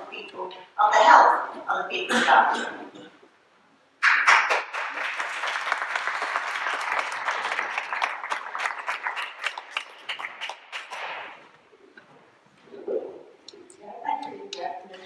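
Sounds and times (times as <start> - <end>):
audience applause: 4.0 - 11.4.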